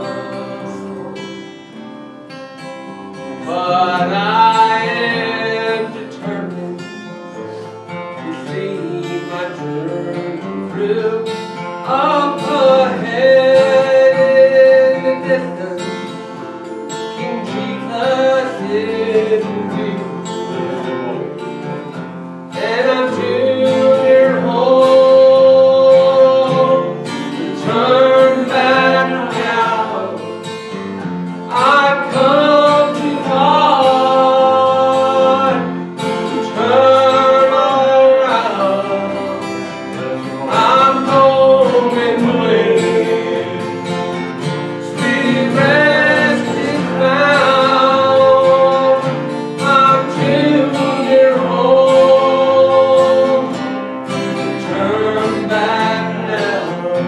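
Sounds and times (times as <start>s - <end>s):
man singing gospel song: 0.0s - 1.2s, 3.2s - 21.7s, 22.5s - 57.0s
strummed acoustic guitar: 0.0s - 57.0s.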